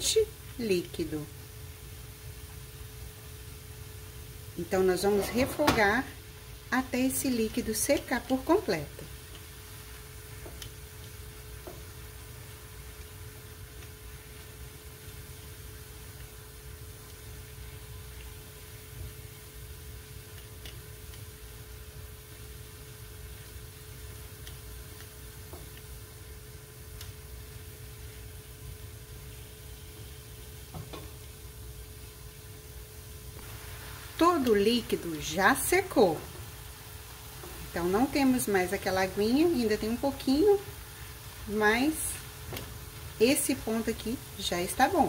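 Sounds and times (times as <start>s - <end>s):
faint steady hum: 0.0s - 45.0s
vegetables sizzling in frying pan: 0.0s - 45.0s
spatula stirring and tapping pan: 9.0s - 15.3s, 20.2s - 21.6s, 24.2s - 26.0s, 30.7s - 31.2s.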